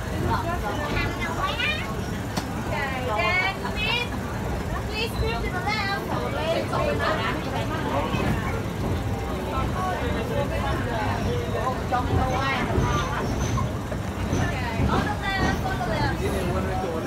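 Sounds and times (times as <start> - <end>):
passengers chattering: 0.0 - 17.0.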